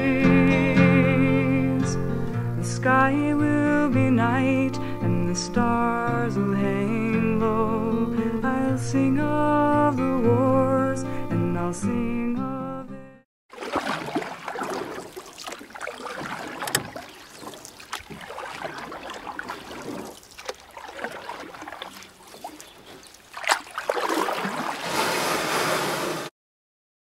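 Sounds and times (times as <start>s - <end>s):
water lapping and splashing: 13.5s - 26.3s.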